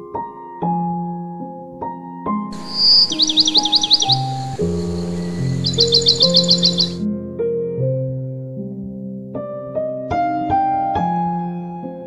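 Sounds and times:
slow sad piano music: 0.0 - 12.0
birds chirping: 2.6 - 7.0.

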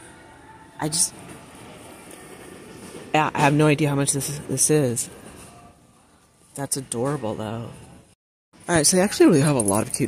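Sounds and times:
store interior hum: 0.0 - 10.0.

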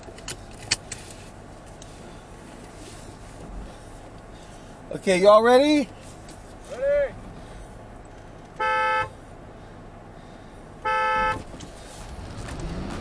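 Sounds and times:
car horn honks: 8.5 - 9.2, 10.8 - 11.6
engine revving: 10.8 - 13.0.

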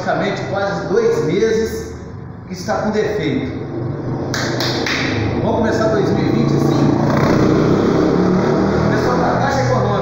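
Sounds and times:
man talking: 0.0 - 3.6, 5.4 - 7.2, 8.8 - 10.0.

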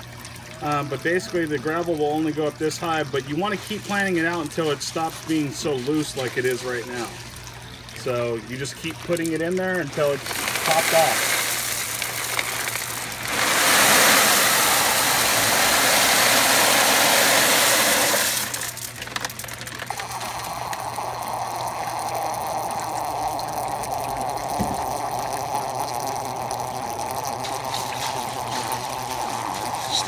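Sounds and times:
running water: 0.0 - 30.0
clay pebbles pouring rattle: 8.0 - 24.3, 24.9 - 30.0.

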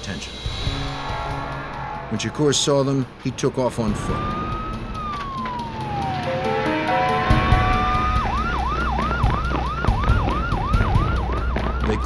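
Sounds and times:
low thumps: 3.8 - 11.9
police siren wailing and yelping: 4.0 - 12.0.

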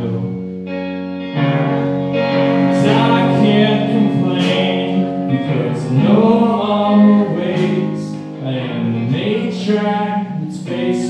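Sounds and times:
electric guitar: 0.0 - 11.0
drums: 1.4 - 11.0.

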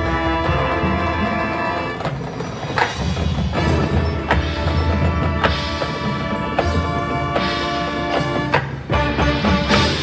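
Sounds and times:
marching band playing: 0.0 - 10.0
sharp percussion strikes: 2.0 - 10.0.

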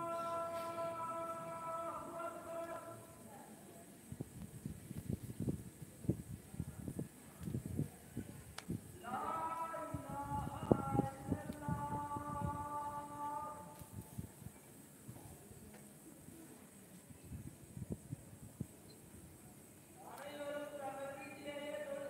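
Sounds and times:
voice holding long notes: 0.0 - 3.3, 9.0 - 13.9.

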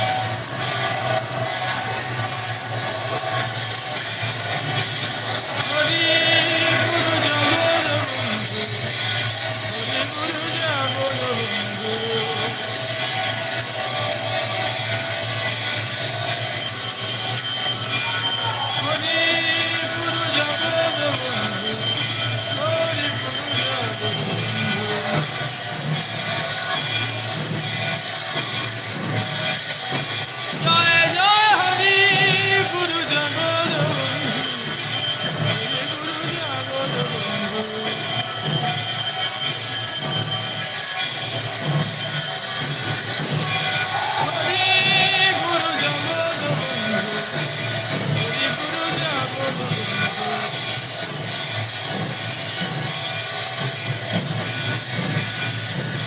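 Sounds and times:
cymbals clashing: 0.0 - 56.0
gongs: 0.0 - 56.0
hand bells ringing: 0.0 - 56.0.

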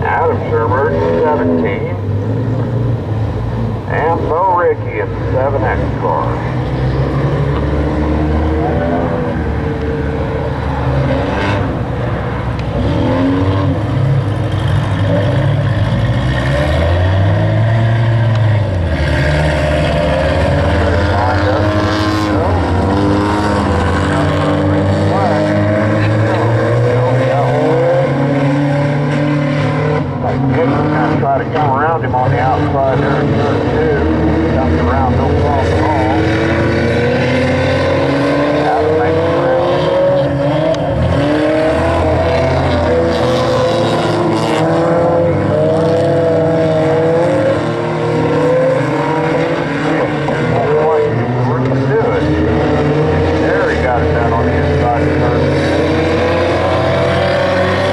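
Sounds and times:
racing car engines: 0.0 - 57.9.

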